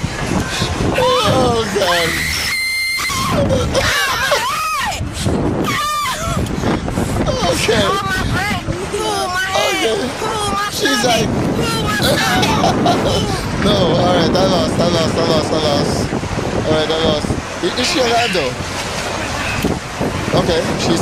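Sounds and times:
steady rushing noise: 0.0s - 21.0s
girls screaming: 1.0s - 6.5s
man laughing: 3.0s - 6.4s, 7.3s - 8.2s, 9.6s - 11.3s, 12.0s - 14.0s.

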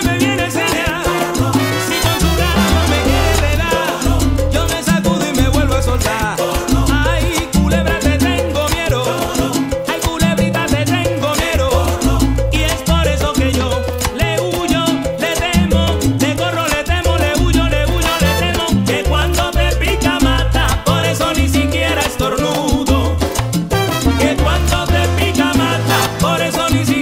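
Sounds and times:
conga and timbale percussion: 0.0s - 27.0s
repeating bass line: 0.0s - 27.0s
salsa band playing: 0.0s - 27.0s.

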